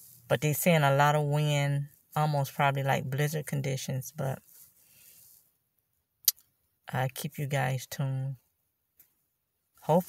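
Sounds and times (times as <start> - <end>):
woman speaking: 0.3 - 4.4, 6.9 - 8.4.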